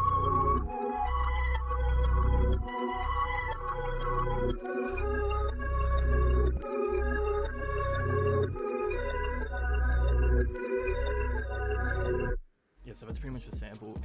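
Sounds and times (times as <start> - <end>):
bass line: 0.0 - 12.4
dark experimental music loop: 0.0 - 14.0.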